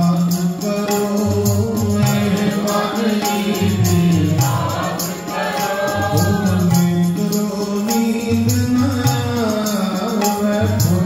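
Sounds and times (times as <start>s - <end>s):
harmonium: 0.0s - 11.0s
tabla beat: 0.0s - 11.0s
voices singing: 1.8s - 8.2s.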